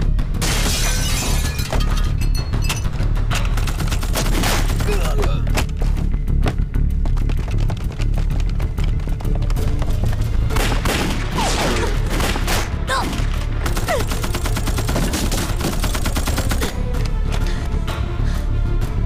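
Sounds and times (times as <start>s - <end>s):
dramatic music: 0.0s - 19.0s.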